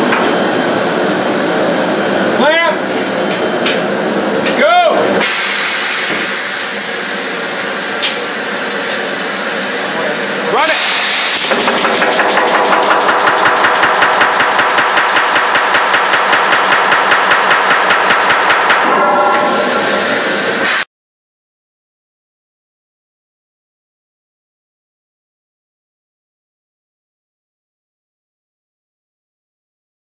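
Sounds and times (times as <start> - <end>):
hiss of air: 0.2 - 12.7, 19.4 - 20.8
pneumatic riveter rattling: 10.6 - 18.9.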